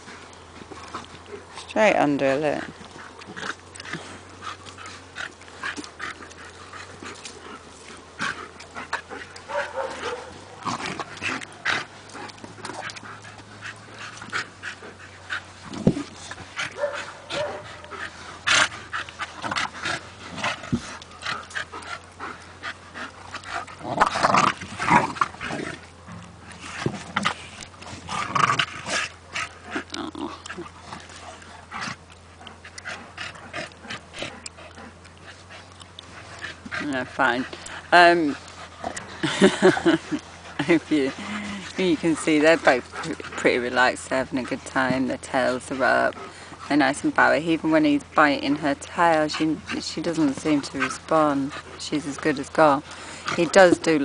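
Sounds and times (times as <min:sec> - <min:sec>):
dogs panting: 0:00.0 - 0:54.0
dogs scuffling in sand: 0:00.0 - 0:54.0.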